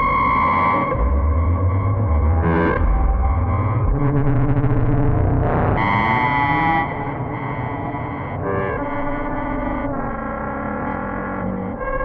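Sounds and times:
deep bass: 0:00.0 - 0:06.1.

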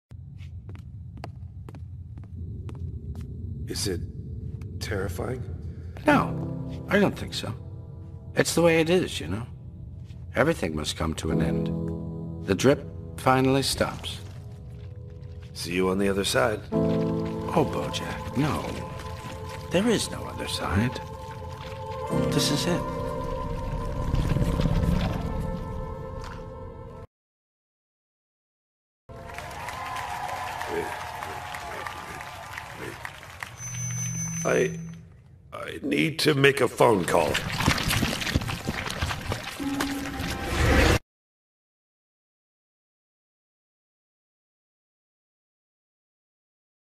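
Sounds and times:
low rough rumble: 0:00.1 - 0:06.0
low hum: 0:00.1 - 0:27.0, 0:33.6 - 0:36.4.

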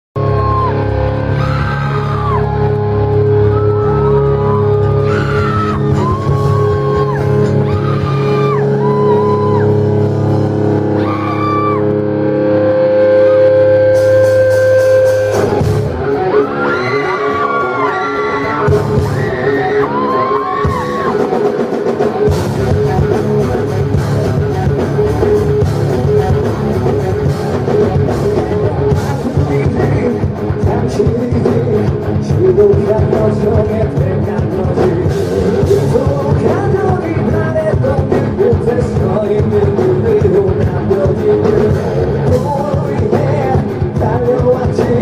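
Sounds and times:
guitar and bass chords: 0:00.0 - 0:45.0
full rock band with drums: 0:00.2 - 0:45.0
high bending guitar melody: 0:00.2 - 0:45.0.

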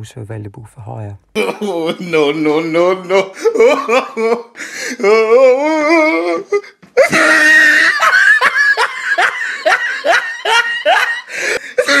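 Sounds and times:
loud high-pitched laughter: 0:07.0 - 0:12.0.

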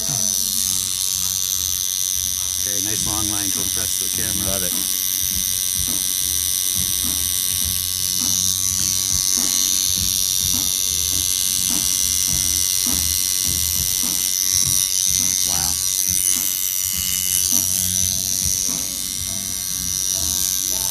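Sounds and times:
tattoo machine buzzing: 0:00.0 - 0:20.9.

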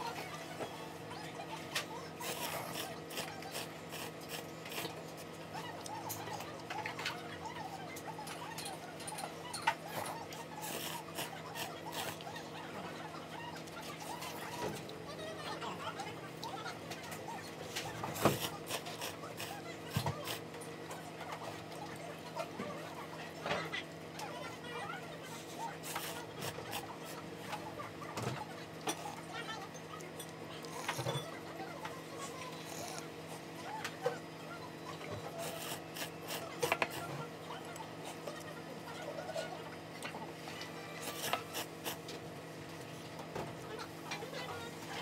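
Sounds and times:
slurping: 0:02.0 - 0:06.7, 0:09.9 - 0:12.5, 0:17.1 - 0:20.5, 0:25.3 - 0:27.7, 0:31.8 - 0:33.6, 0:35.2 - 0:38.5, 0:40.7 - 0:42.1.

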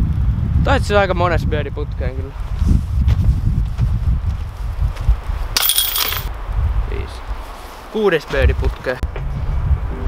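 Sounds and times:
disc hitting metal chains: 0:05.6 - 0:06.3.

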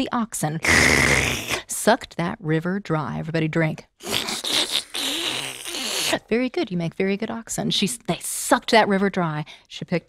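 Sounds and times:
people slurping with mouths: 0:00.6 - 0:01.7, 0:04.0 - 0:06.2.

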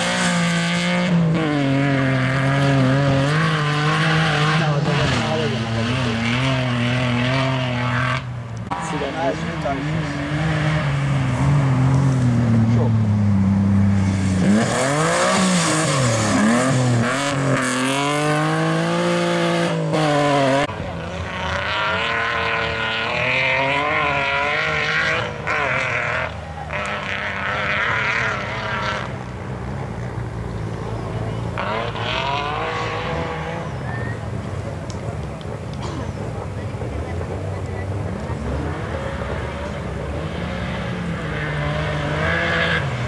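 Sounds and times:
rally car engine revving: 0:00.0 - 0:43.0.

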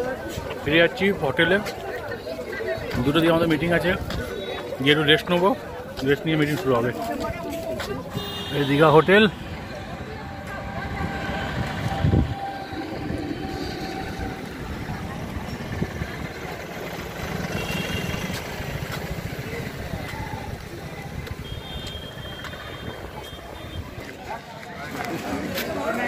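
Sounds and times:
indistinct voices: 0:00.0 - 0:26.0
traffic hum: 0:00.0 - 0:26.0.

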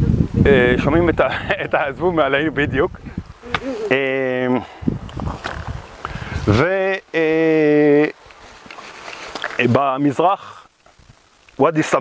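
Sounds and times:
man saying uh: 0:00.5 - 0:04.8, 0:06.4 - 0:08.2.

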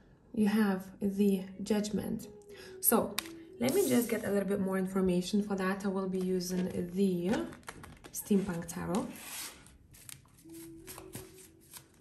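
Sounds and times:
cards being shuffled: 0:03.2 - 0:04.2, 0:06.2 - 0:12.0.

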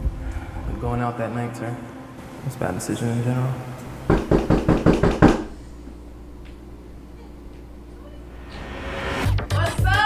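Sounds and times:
rapid knocking on door: 0:04.1 - 0:05.5.

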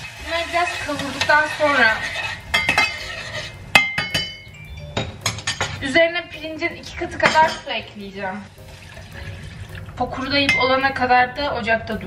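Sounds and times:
rice stirred in a pan: 0:00.0 - 0:03.6
utensil clinking on cookware: 0:00.5 - 0:05.9, 0:07.2 - 0:07.8, 0:10.4 - 0:10.9.

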